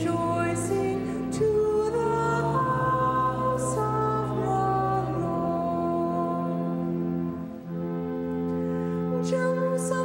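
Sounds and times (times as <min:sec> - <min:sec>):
person singing a psalm: 0:00.0 - 0:07.2, 0:09.1 - 0:10.0
church organ chords: 0:00.0 - 0:10.0.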